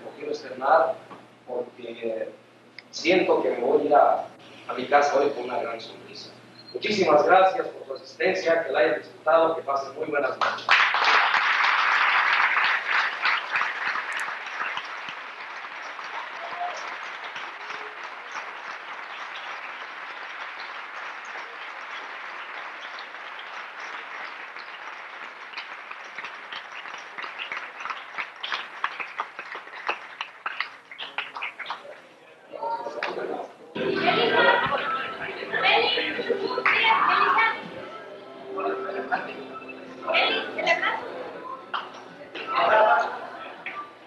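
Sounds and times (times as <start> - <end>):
audience applauding: 10.3 - 32.1, 33.8 - 37.6.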